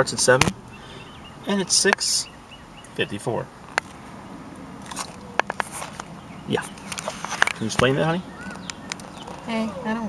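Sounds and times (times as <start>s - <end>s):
sharp clicks and crackles: 8.6s - 9.5s.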